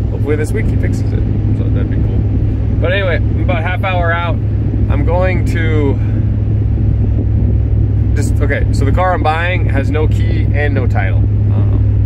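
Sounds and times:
engine and road noise in cab: 0.0 - 12.0.

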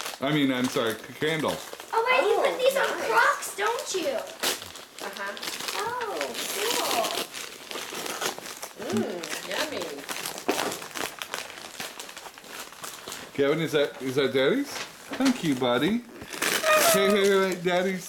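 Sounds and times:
wrapping paper crinkling: 0.0 - 18.0.

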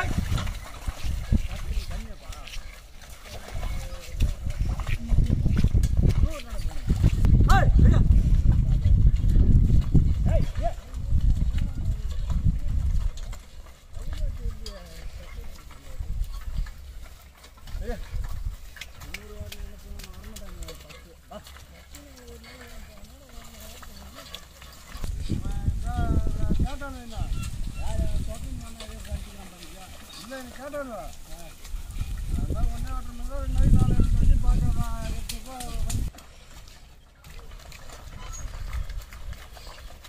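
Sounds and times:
splashing through mud: 0.0 - 40.0
squelching hoof steps: 0.0 - 40.0.

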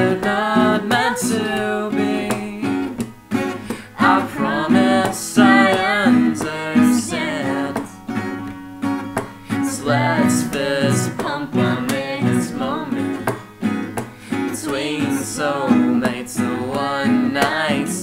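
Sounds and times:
woman and man singing duet: 0.0 - 3.0, 3.6 - 8.1, 9.5 - 13.5, 14.2 - 18.0
acoustic guitars strumming: 0.0 - 18.0.

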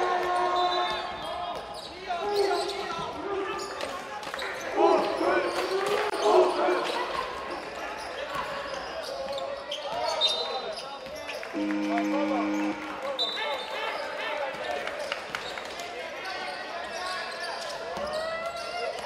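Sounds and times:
low horn: 11.5 - 13.1
referee whistle: 11.5 - 13.7.

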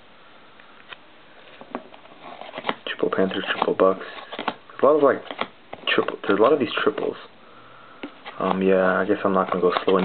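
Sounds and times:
cards sliding out: 0.9 - 7.2.

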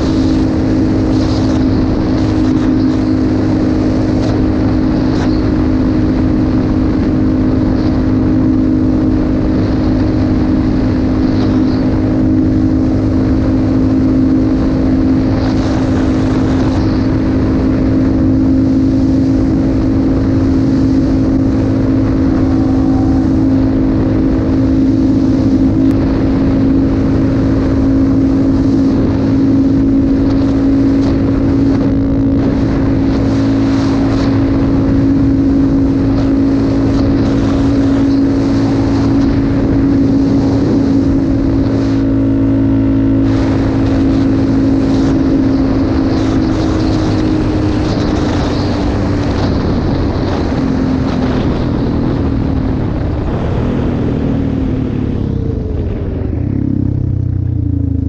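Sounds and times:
engine running steadily: 0.0 - 58.0.

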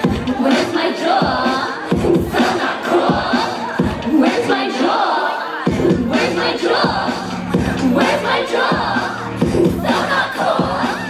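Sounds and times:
screamed shouted vocals: 9.8 - 11.0.

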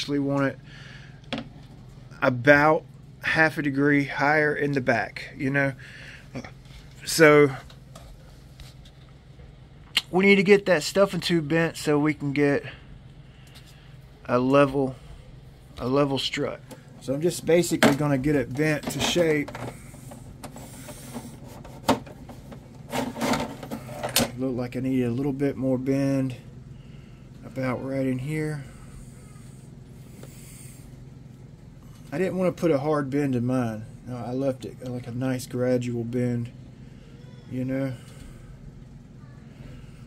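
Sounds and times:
low background hum: 0.0 - 40.0.

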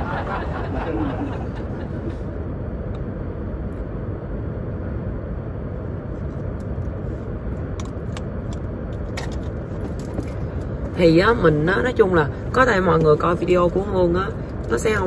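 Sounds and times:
car cabin road and engine rumble: 0.0 - 15.0.

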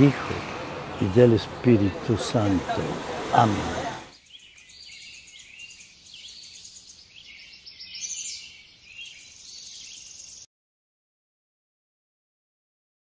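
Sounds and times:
birds chirping: 0.0 - 10.5.

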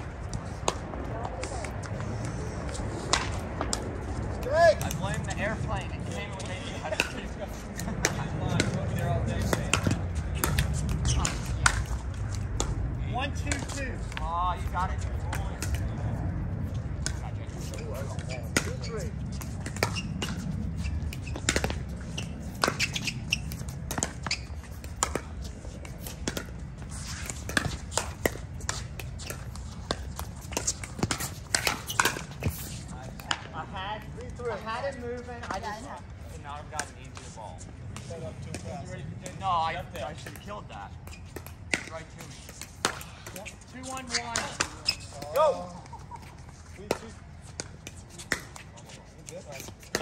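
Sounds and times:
voices: 0.4 - 26.3, 41.7 - 50.0.

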